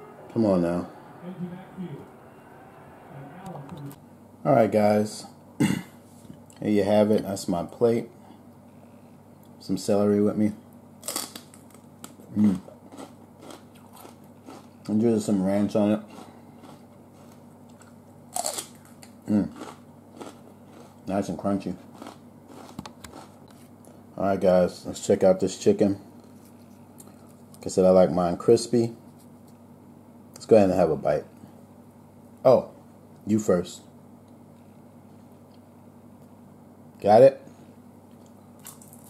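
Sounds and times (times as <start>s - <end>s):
faint low hum: 0.0s - 39.0s
crunch of biting celery: 11.0s - 14.8s, 16.0s - 21.1s, 21.8s - 23.7s, 38.2s - 39.0s.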